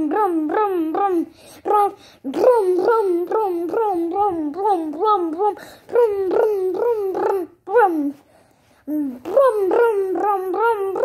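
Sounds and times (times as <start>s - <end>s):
boy humming: 0.0s - 8.2s, 8.9s - 11.0s.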